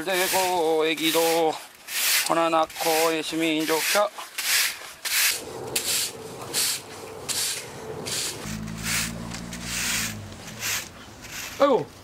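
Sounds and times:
broom sweeping asphalt: 0.0 - 12.0.

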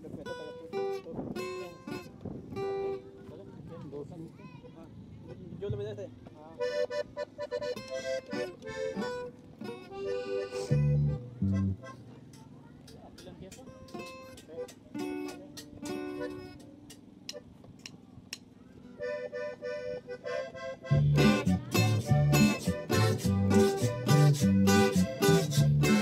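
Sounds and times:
accordion phrases: 4.6 - 12.8, 13.7 - 17.5, 18.9 - 26.0
guitar notes: 5.3 - 26.0
deep bass notes: 10.7 - 12.0, 20.9 - 26.0.

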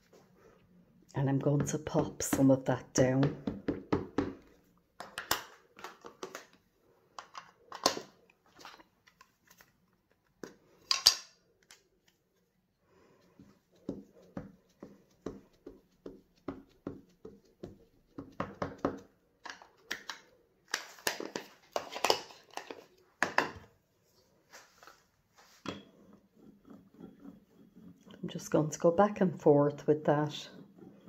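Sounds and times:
ink pad tapping on plastic: 13.8 - 19.1.

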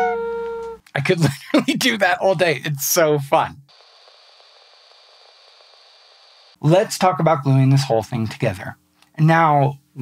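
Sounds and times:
faint steady hiss: 0.0 - 10.0
thin high whine: 3.6 - 6.8.

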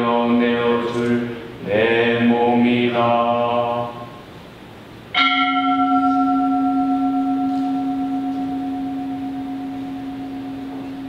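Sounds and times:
altar bell ringing: 5.2 - 11.0.

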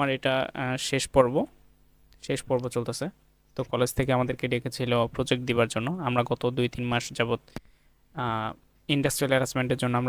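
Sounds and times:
man talking: 0.0 - 1.6, 2.2 - 7.5, 8.1 - 10.0.

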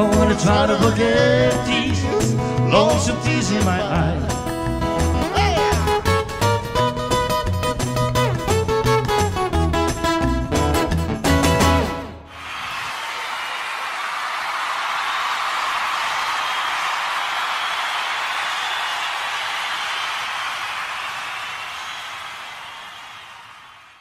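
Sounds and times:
audience applauding: 12.3 - 24.0.

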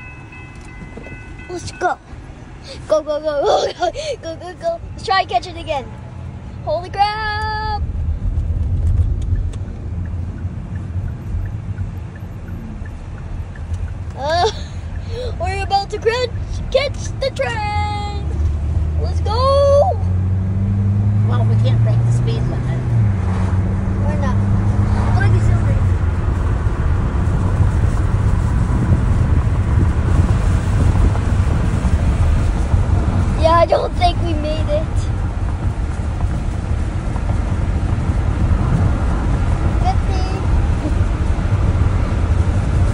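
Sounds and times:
car engine accelerating: 0.0 - 42.9
road noise: 0.0 - 42.9.

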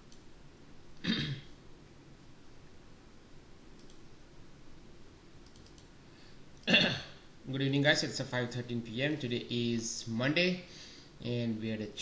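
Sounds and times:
computer mouse clicks: 0.0 - 0.3, 3.7 - 4.1, 5.4 - 5.9.

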